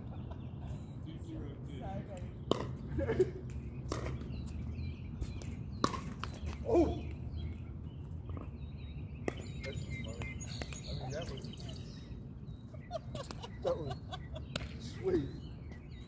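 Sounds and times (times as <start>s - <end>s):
paddles hitting plastic ball: 2.2s - 4.4s, 5.3s - 7.2s.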